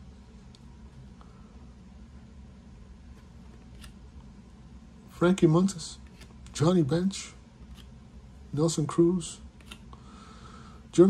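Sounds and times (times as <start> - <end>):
steady low hum: 0.0 - 11.0
baseball cards sliding ticks: 7.7 - 8.0, 9.6 - 10.0.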